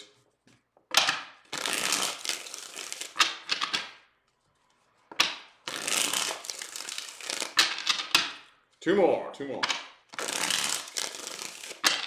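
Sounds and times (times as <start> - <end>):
cards being riffle-shuffled: 1.0 - 8.3, 10.1 - 12.0.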